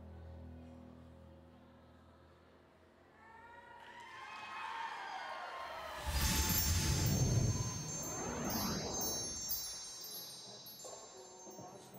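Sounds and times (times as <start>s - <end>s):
low rumble: 6.0s - 10.0s
shimmering chimes ringing: 6.0s - 11.9s.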